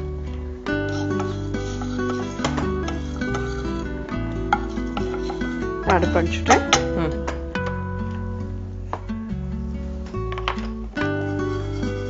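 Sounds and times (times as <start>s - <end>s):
plucked-string background music: 0.0s - 12.0s
metal ladle scraping and stirring: 0.7s - 6.9s, 11.1s - 12.0s.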